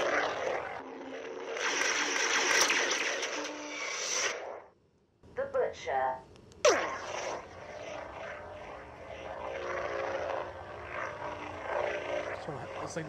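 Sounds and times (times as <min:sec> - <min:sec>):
lightsaber blade hum: 0:00.0 - 0:04.7, 0:06.6 - 0:13.0
lightsaber ignition sweep: 0:00.0 - 0:04.7, 0:06.6 - 0:13.0.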